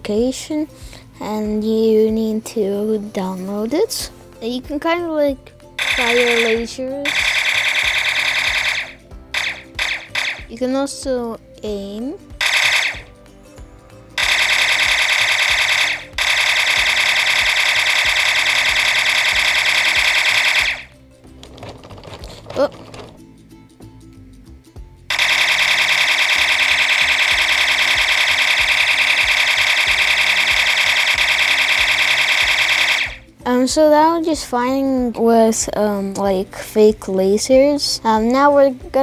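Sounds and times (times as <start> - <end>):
electronic rapid-fire blaster effect: 5.8 - 10.6, 12.4 - 13.1, 14.2 - 21.0, 25.1 - 33.3.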